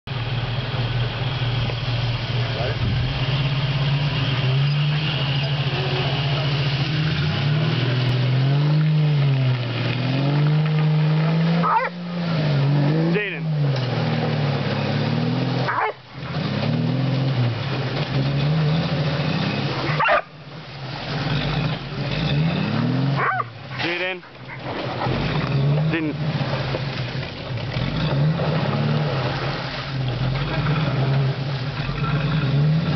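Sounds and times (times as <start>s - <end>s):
engine revving up and down: 0.9s - 32.9s.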